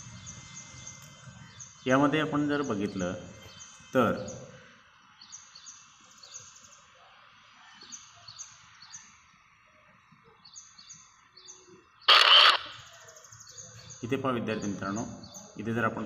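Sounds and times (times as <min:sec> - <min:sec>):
loud sharp burst of noise: 0:12.1 - 0:12.9.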